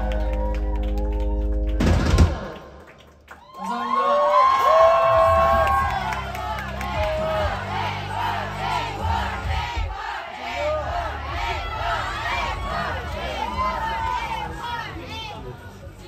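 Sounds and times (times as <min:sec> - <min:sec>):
audience cheering: 0:00.0 - 0:14.8.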